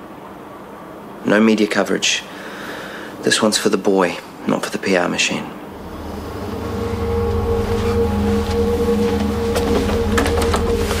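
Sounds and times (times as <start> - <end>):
deep drone: 5.6 - 11.0
low sustained chords: 5.6 - 11.0.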